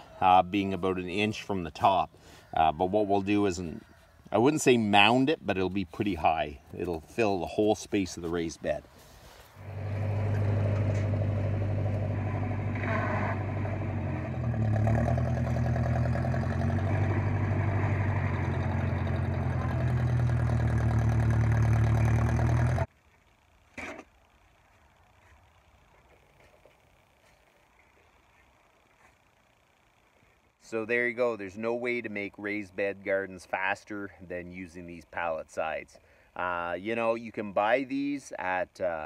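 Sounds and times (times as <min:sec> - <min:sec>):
tractor engine running: 0:05.6 - 0:23.6.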